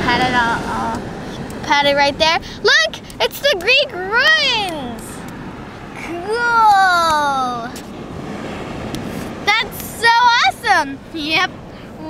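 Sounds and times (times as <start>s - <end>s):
surf on a beach: 0.0s - 12.0s
high-pitched voice exclamation: 6.0s - 7.8s.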